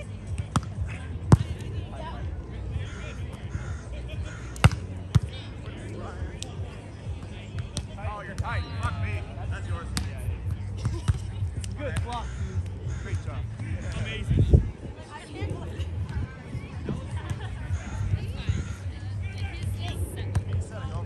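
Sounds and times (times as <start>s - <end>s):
players' voices: 0.0s - 21.0s.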